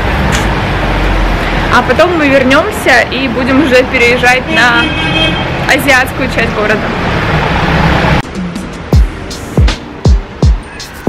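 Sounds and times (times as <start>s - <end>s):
city street noise: 0.0s - 11.0s
background music: 8.2s - 11.0s.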